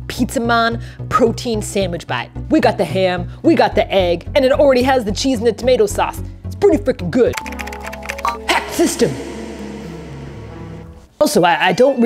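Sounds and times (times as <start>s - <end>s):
music with held descending notes: 7.4s - 11.1s.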